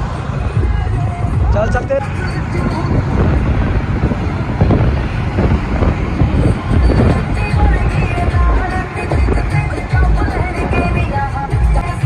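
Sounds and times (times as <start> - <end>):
vehicle road noise: 0.0 - 12.0
wind buffeting microphone: 0.0 - 12.0.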